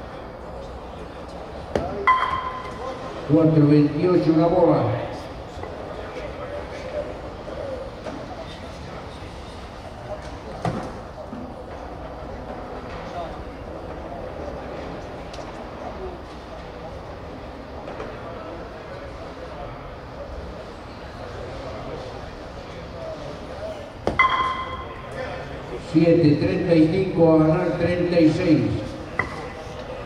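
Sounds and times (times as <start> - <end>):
murmur of spectators chatting: 0.0 - 30.0.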